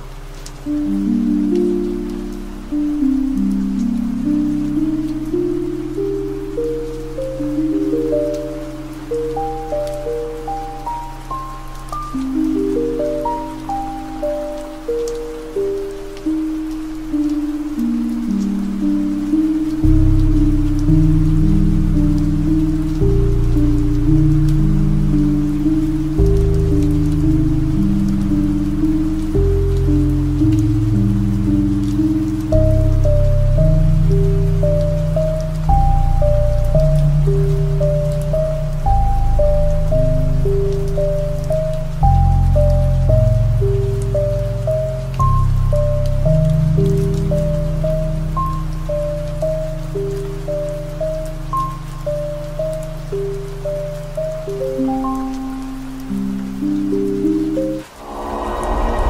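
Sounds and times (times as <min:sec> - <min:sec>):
piano melody: 0:00.0 - 0:59.0
rain: 0:00.0 - 0:59.0
deep sustained bass chords: 0:19.8 - 0:49.9.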